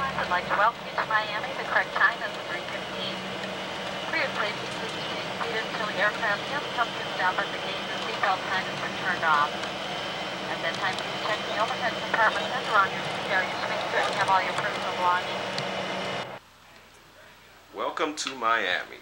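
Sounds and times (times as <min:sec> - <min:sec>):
people talking: 0:00.0 - 0:15.6, 0:16.6 - 0:19.0
airliner cabin hum and whine: 0:00.0 - 0:16.4.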